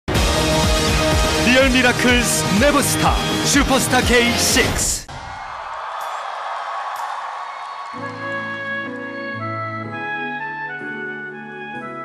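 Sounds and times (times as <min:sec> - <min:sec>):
audience applause and crowd noise: 0:00.9 - 0:09.8.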